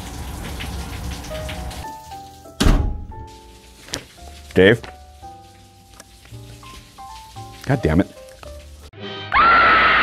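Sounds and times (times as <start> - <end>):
rain: 0.0 - 2.6, 3.2 - 8.9
loud thump: 2.6 - 3.1.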